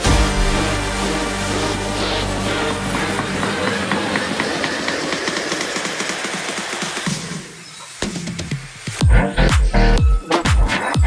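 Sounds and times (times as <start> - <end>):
band saw running: 0.0 - 6.0.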